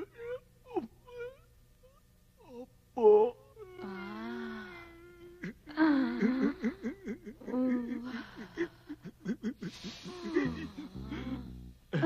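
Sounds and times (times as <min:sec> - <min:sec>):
person crying and wailing: 0:02.5 - 0:12.0.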